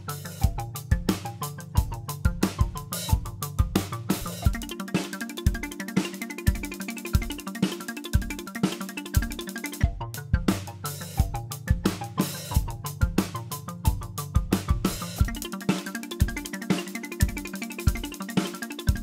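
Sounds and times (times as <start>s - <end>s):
drum kit playing: 0.0s - 19.0s
pitch-shifted drum loop: 0.0s - 19.0s.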